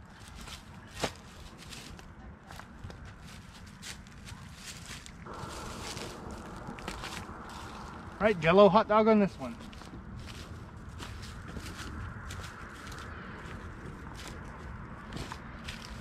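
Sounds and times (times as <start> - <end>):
footsteps: 0.2 - 16.0
low rumble: 5.2 - 16.0
steady hiss: 5.3 - 9.5.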